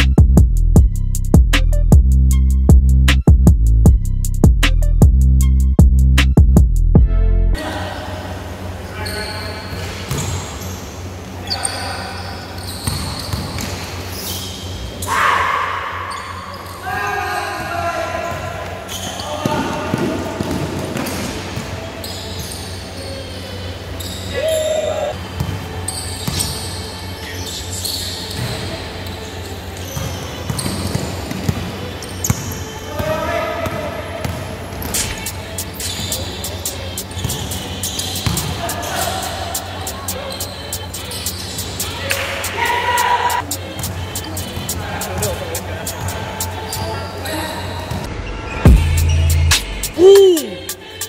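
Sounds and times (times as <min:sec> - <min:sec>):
basketball bouncing on court: 0:12.8 - 0:13.9, 0:19.4 - 0:21.8, 0:29.9 - 0:35.2, 0:37.2 - 0:38.8
players calling out: 0:35.2 - 0:48.1, 0:48.7 - 0:51.0.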